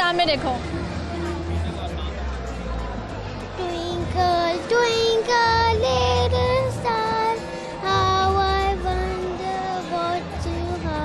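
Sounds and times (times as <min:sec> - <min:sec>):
girl singing into a microphone: 0:03.6 - 0:11.0.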